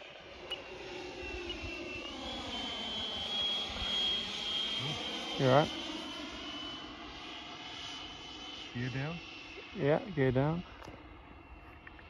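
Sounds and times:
model jet fan whine: 0.0s - 12.0s.

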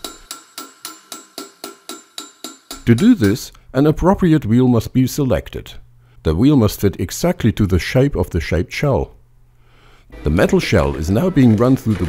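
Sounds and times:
hammer tapping metal bowl: 0.0s - 3.4s.

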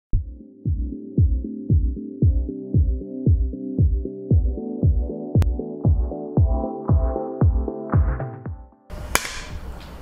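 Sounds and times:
electronic music with kick drum: 0.2s - 8.9s.

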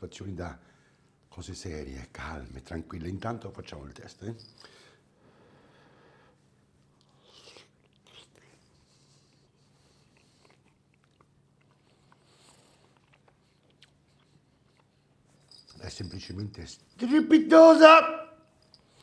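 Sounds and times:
faint room hum: 0.0s - 19.0s
man chewing food: 6.8s - 8.8s, 9.4s - 15.3s.

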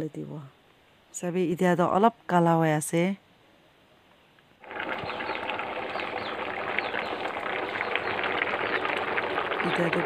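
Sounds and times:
syrup boiling in a pot: 4.6s - 10.0s.

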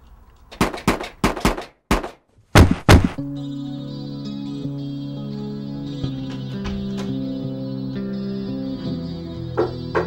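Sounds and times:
gunshots: 0.6s - 3.2s.

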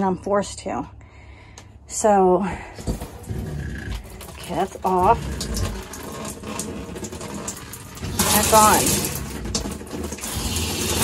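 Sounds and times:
water pump humming: 2.8s - 11.0s.

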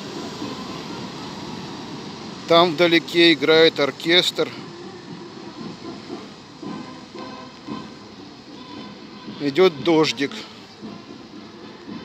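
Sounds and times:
distant band playing: 0.0s - 12.0s
street ambience hiss: 0.0s - 12.0s.

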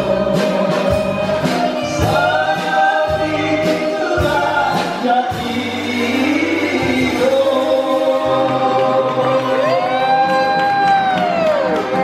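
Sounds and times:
person singing: 0.0s - 12.0s
electric guitar: 8.0s - 12.0s.

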